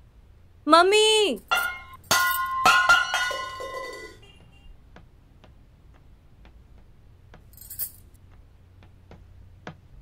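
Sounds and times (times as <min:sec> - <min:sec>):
metal tumbler clanging on floor: 0:01.5 - 0:04.3.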